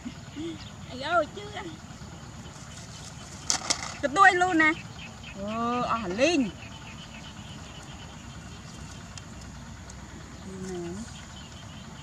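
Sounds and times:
steady low rumble: 0.0 - 12.0
sharp rustling clicks: 3.0 - 4.0.

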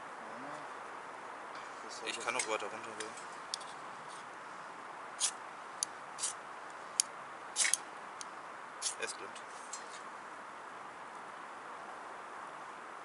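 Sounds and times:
knife scraping fire steel: 5.2 - 5.4, 7.6 - 7.8, 8.8 - 9.0.

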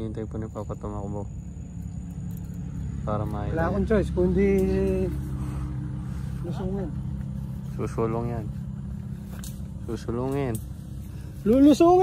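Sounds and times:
low engine-like drone: 0.0 - 12.0.

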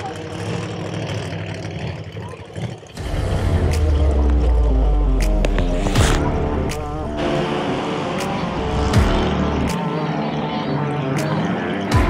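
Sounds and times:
racing engines running: 0.0 - 12.0
music with heavy bass and drums: 3.0 - 12.0.

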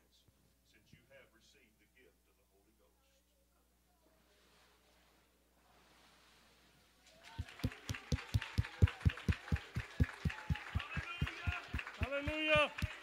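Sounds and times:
rhythmic thumping: 7.4 - 13.0
voices shouting praise: 7.4 - 13.0.

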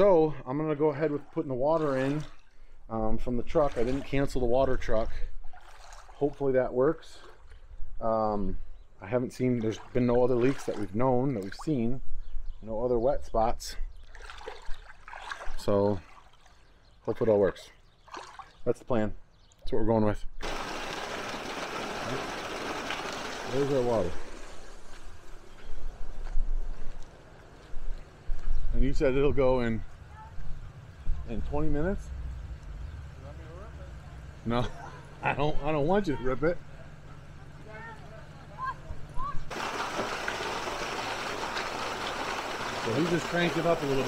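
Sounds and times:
hose water splashing into pool: 0.6 - 7.6, 9.2 - 11.9, 14.0 - 16.7, 18.0 - 18.6, 20.4 - 25.5, 39.5 - 44.0
water gushing from hose: 20.4 - 25.4, 39.5 - 44.0
truck engine hum: 29.8 - 44.0.

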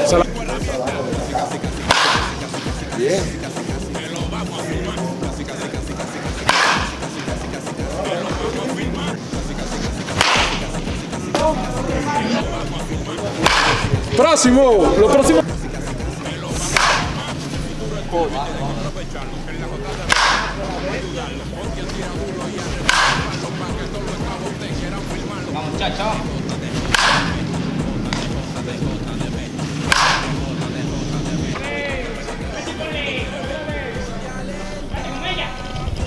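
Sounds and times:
wooden bat cracking balls: 1.8 - 2.8, 6.2 - 7.7, 10.0 - 11.5, 13.3 - 14.1, 16.6 - 17.4, 20.0 - 20.6, 22.7 - 23.6, 26.4 - 28.5, 29.8 - 30.6.

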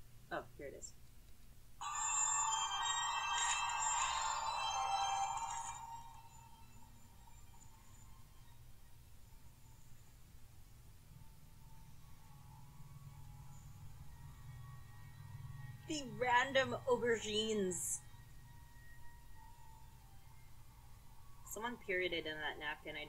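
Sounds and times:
ringing tones music through phone speaker: 1.8 - 8.6.

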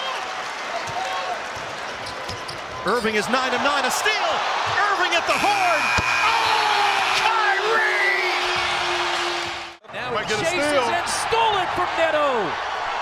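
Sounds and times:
crowd cheering: 0.0 - 13.0
arena horn: 5.4 - 9.8.

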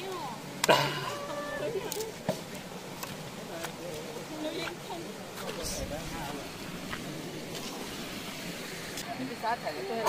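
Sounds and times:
water rushing over rocks: 0.0 - 9.5.

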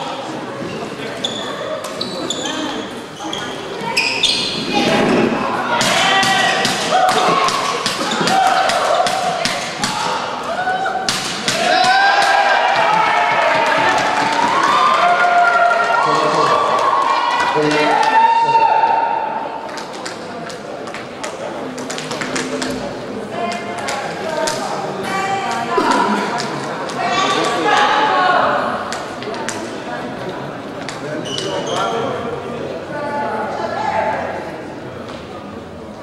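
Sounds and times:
voices in hall: 0.0 - 36.0.

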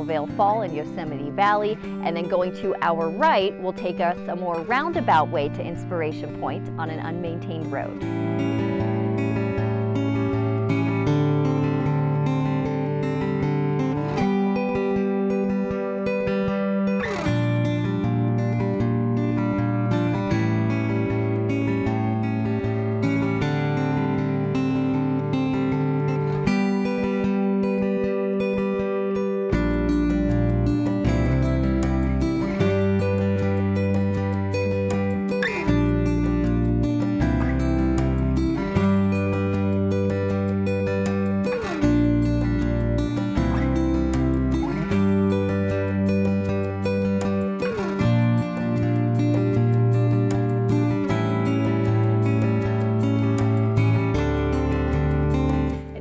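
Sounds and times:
strummed acoustic guitar: 0.0 - 56.0
deep bass notes: 29.6 - 56.0.

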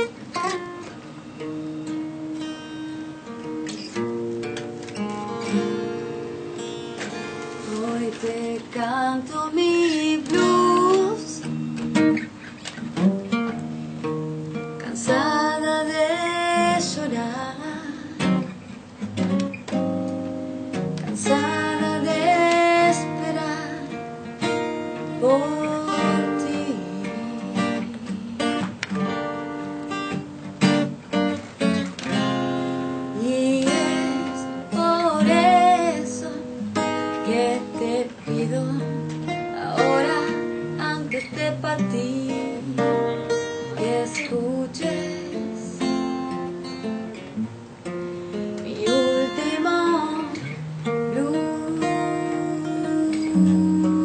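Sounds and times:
acoustic guitar playing blues: 0.0 - 54.0.

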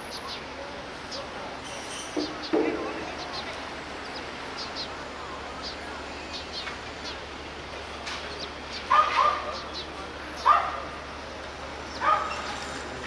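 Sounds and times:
street noise: 0.0 - 13.0
dog barking: 8.9 - 9.6, 10.4 - 11.0, 12.0 - 12.6.

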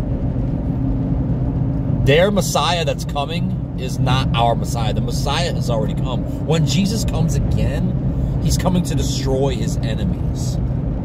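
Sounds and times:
faint constant hum: 0.0 - 11.0
low rumble: 0.0 - 11.0.

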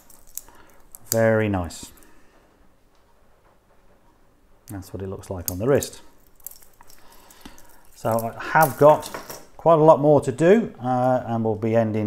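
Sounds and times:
watch bracelet handling: 0.0 - 2.1, 5.4 - 9.4.

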